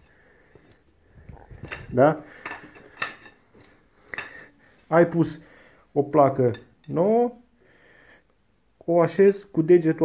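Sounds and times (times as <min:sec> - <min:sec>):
ceramic tiles clinking and scraping: 0:00.0 - 0:04.5.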